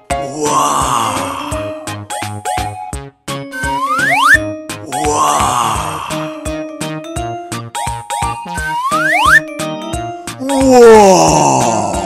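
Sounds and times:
bouncy children's music: 0:00.0 - 0:12.0
cartoon moan falling in pitch: 0:04.9 - 0:06.4, 0:10.4 - 0:12.0.

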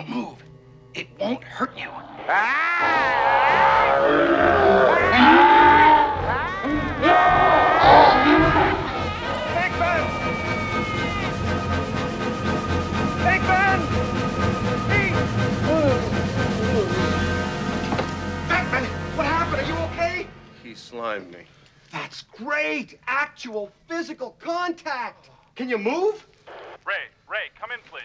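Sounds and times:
creature wailing cries: 0:01.8 - 0:11.4
man screaming: 0:02.3 - 0:11.5
orchestral film score: 0:02.9 - 0:21.5.

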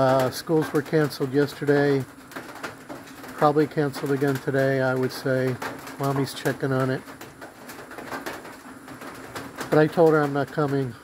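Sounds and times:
soft steady hiss: 0:00.0 - 0:11.0.

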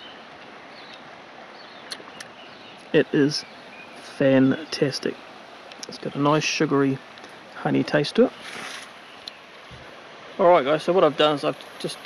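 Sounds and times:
faint bird chirps: 0:00.0 - 0:05.2, 0:08.3 - 0:09.6
steady background hiss: 0:00.0 - 0:12.0.

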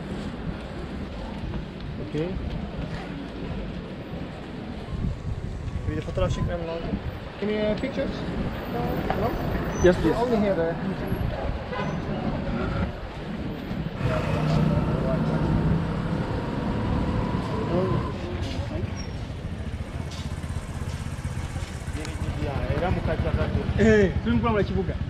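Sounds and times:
motor traffic rumble: 0:00.0 - 0:25.0
people talking: 0:14.0 - 0:16.0, 0:17.3 - 0:20.6, 0:21.8 - 0:25.0.

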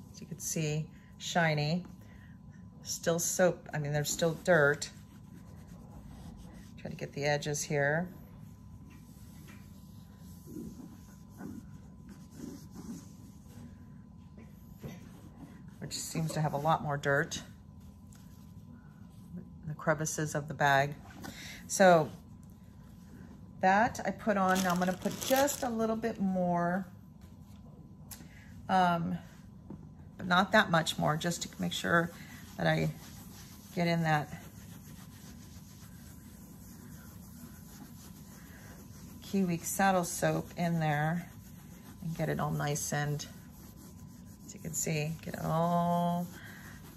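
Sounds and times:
low steady hum: 0:00.0 - 0:46.9
wipe rubbing on canvas: 0:03.0 - 0:19.3, 0:24.2 - 0:25.9, 0:30.2 - 0:46.9.

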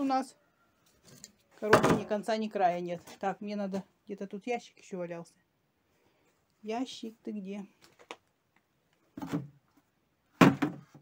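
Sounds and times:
plastic containers knocking and scraping: 0:01.0 - 0:02.3, 0:09.1 - 0:09.6, 0:10.4 - 0:11.0.

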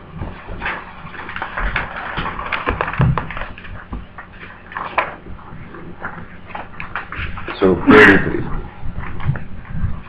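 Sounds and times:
paper rustling: 0:00.3 - 0:05.2.

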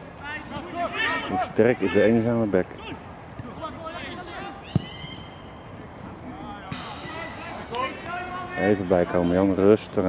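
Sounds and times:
distant players calling: 0:00.0 - 0:10.0
sharp thud: 0:06.7 - 0:07.3.

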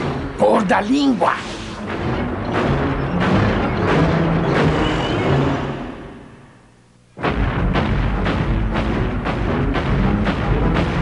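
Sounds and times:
dramatic music: 0:00.0 - 0:11.0
booming stomping footsteps: 0:07.2 - 0:11.0.

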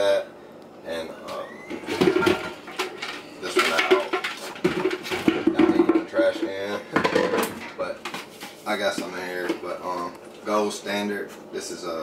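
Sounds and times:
plastic containers clattering: 0:01.7 - 0:09.8.

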